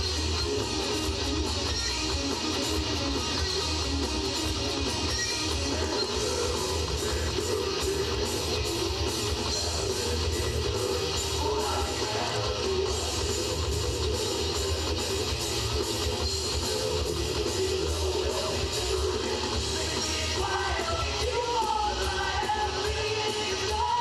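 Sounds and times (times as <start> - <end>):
live metal band playing: 0.0 - 24.0.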